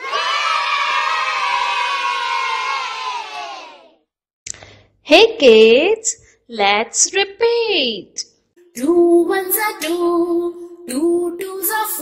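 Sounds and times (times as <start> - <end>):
children cheering and shouting: 0.0 - 4.0.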